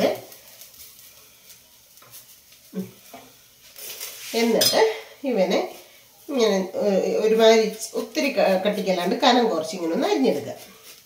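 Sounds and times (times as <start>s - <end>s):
woman talking: 0.0s - 0.3s, 4.3s - 10.7s
light sizzling: 0.0s - 11.0s.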